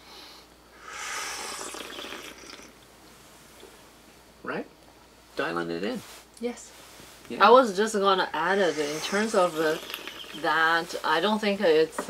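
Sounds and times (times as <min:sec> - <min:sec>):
tea slurping: 0:00.9 - 0:02.8, 0:08.5 - 0:10.5.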